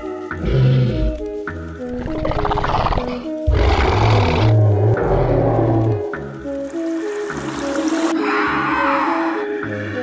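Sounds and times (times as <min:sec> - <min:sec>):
background music with sustained notes: 0:00.0 - 0:10.0
rough animal roar: 0:02.0 - 0:06.1.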